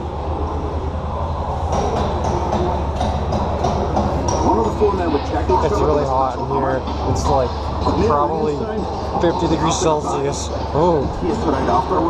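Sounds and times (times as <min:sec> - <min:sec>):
ride car rumbling along track: 0:00.0 - 0:12.0
rapid sharp knocks: 0:01.7 - 0:04.9.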